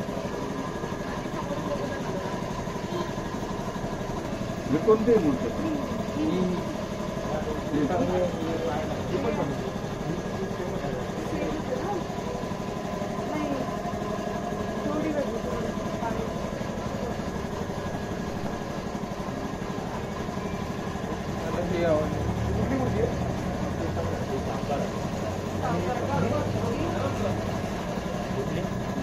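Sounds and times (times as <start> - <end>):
people talking indistinctly: 0.0 - 29.0.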